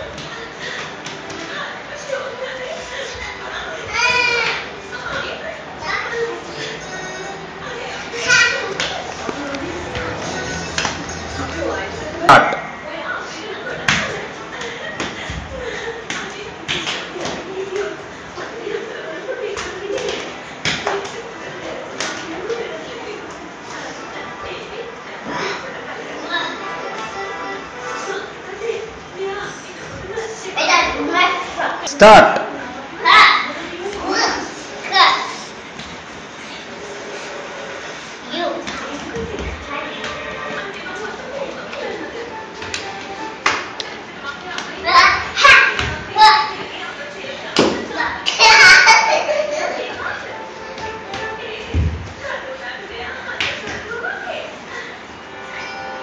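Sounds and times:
faint background music: 0.0 - 56.0
children playing and shrieking: 3.2 - 4.7, 44.8 - 46.6, 47.9 - 50.1.

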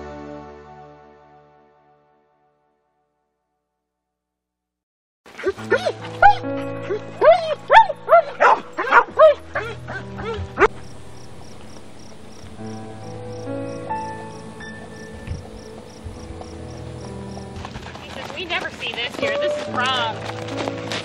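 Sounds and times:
music with long held notes: 0.0 - 2.8, 5.6 - 21.0
dog barking and yelping: 5.4 - 10.8.

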